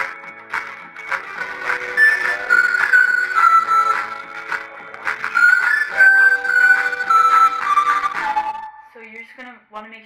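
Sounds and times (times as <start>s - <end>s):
acoustic guitar playing: 0.0s - 8.9s
high clear melody line: 1.6s - 4.5s, 5.2s - 8.9s.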